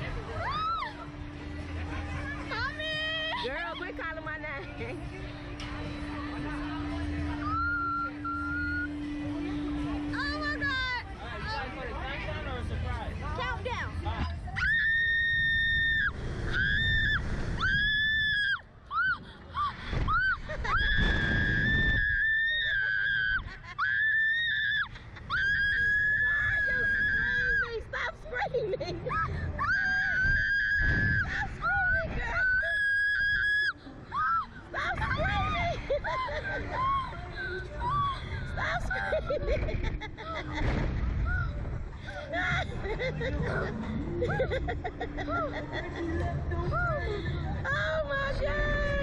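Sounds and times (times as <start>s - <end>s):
low hum: 0.0s - 49.0s
wind rumble on microphone: 19.2s - 22.5s.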